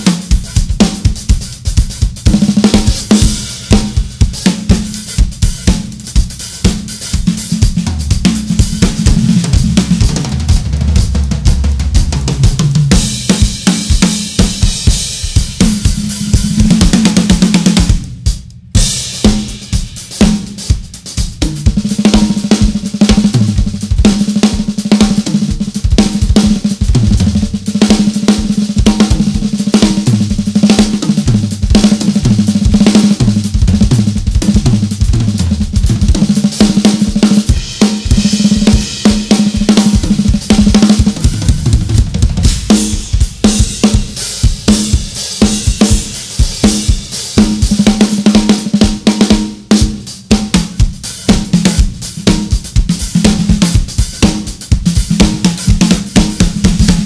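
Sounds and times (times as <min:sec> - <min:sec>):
drum kits playing solo: 0:00.0 - 0:57.0.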